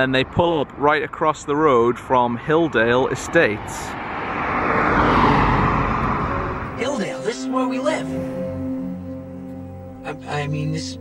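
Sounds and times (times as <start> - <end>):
car tyre and road noise: 0.0 - 9.9.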